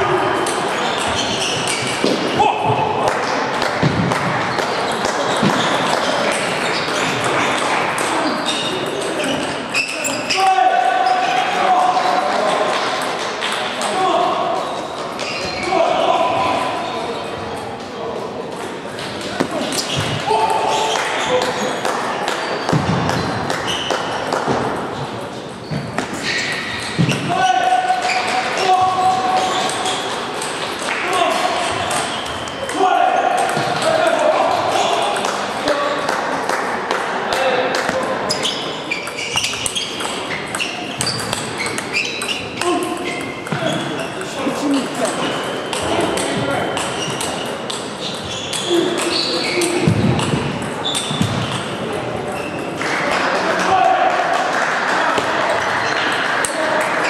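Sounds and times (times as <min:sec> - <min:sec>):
murmur of voices: 0:00.0 - 0:57.0
ping pong ball clicking on bats: 0:39.0 - 0:43.6.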